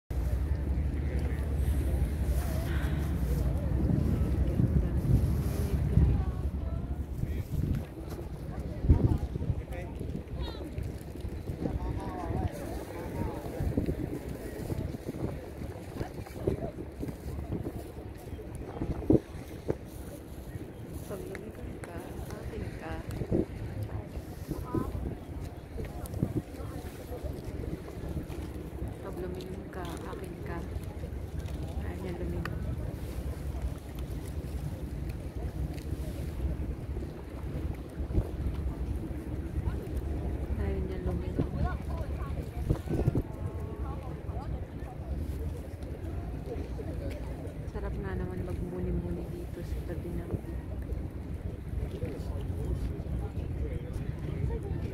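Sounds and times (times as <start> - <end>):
wind buffeting microphone: 0.1 - 54.9.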